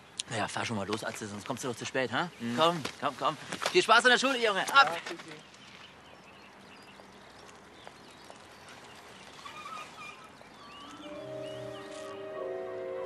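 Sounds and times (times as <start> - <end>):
faint bird chirps: 5.4 - 12.3
background music with held tones: 11.0 - 13.0.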